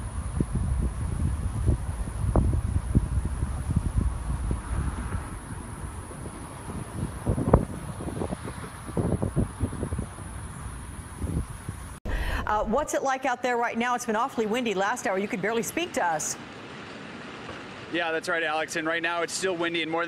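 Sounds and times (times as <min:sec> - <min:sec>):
wind buffeting microphone: 0:00.0 - 0:12.9.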